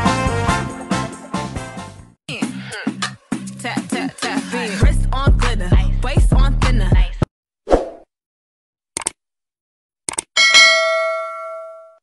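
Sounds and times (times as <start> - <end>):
bell ding: 10.4 - 12.0.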